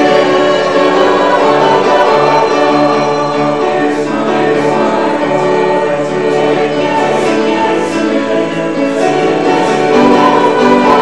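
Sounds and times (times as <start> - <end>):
congregation singing a hymn: 0.0 - 11.0
keyboard accompaniment: 0.0 - 11.0.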